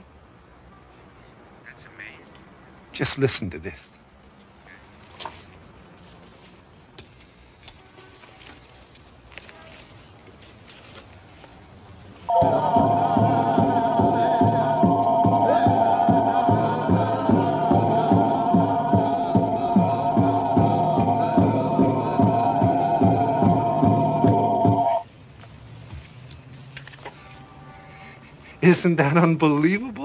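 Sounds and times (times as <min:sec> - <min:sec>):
high tones over low pulsing: 0:12.3 - 0:25.0.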